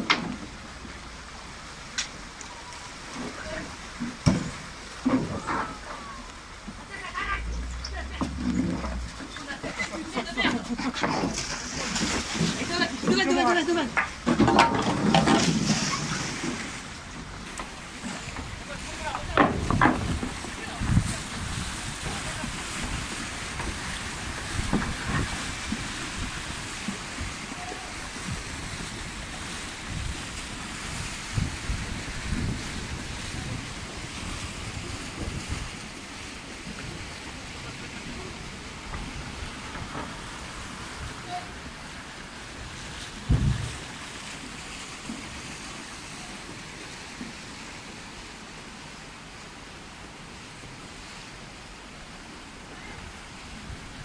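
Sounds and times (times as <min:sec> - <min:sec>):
splashing of wading people: 0:00.0 - 0:49.9
river current rushing: 0:00.0 - 0:54.0
wind buffeting microphone: 0:18.4 - 0:41.8, 0:42.6 - 0:44.0.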